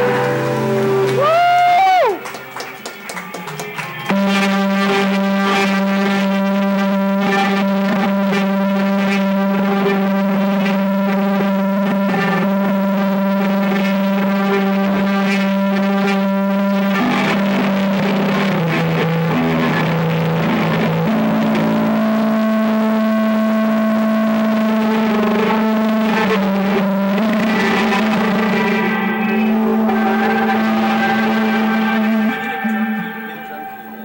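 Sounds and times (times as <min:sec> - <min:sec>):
distorted electric guitar drone: 0:00.0 - 0:34.0.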